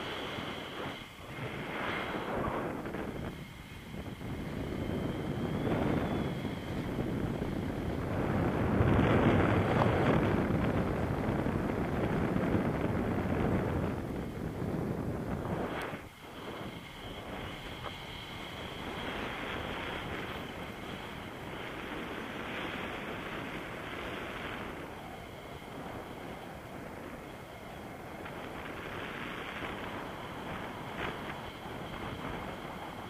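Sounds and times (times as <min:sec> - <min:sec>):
wind rushing over microphone: 0:00.0 - 0:33.0.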